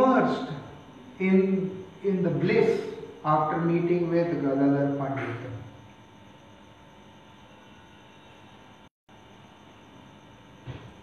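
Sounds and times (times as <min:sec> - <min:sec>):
room and microphone hiss: 0:00.0 - 0:11.0.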